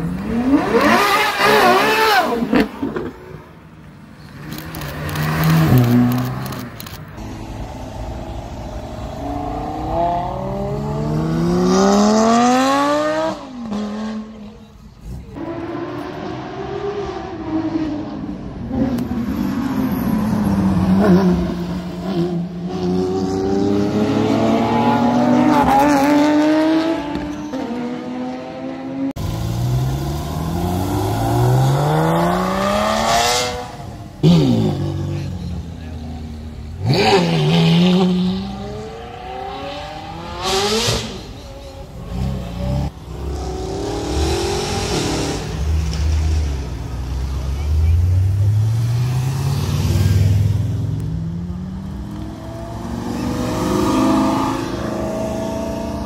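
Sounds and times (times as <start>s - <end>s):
car engines accelerating hard: 0.0s - 56.0s.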